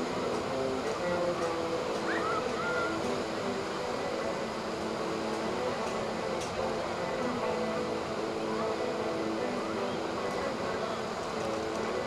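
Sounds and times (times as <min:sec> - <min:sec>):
distant jet boat engines droning: 0:00.0 - 0:12.0
surf: 0:00.0 - 0:12.0
wind: 0:00.0 - 0:12.0.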